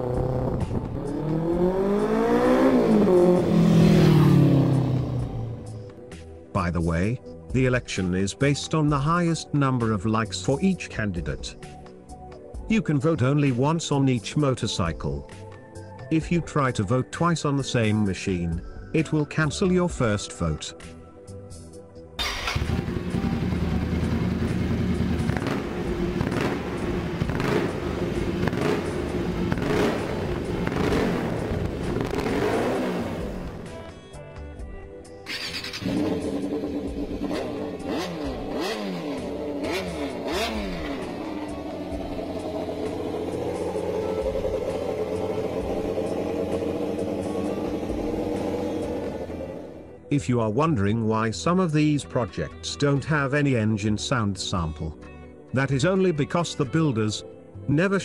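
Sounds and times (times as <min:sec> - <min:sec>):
four-cylinder motorcycle engine revving: 0:00.0 - 0:06.0, 0:22.2 - 0:34.1, 0:35.3 - 0:50.0
motorcycle engine revving: 0:00.0 - 0:06.0, 0:22.2 - 0:34.1, 0:35.3 - 0:50.0.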